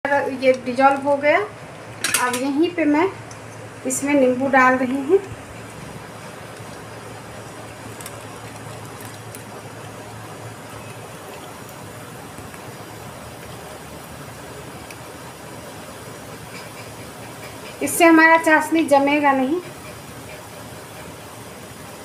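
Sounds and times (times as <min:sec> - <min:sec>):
syrup boiling with steady hiss: 0:00.0 - 0:22.0.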